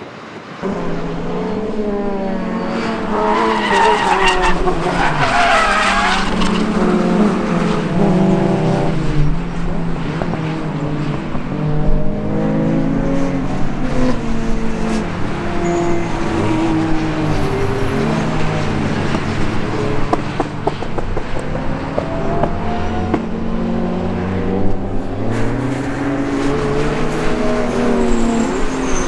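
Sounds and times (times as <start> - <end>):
racing car engines: 0.0 - 29.0
tyre squeal: 2.5 - 6.7, 15.6 - 16.7, 27.4 - 29.0.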